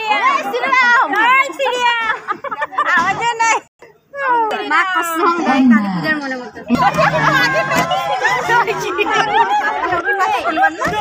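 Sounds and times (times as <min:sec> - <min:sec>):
women chattering: 0:00.0 - 0:11.0.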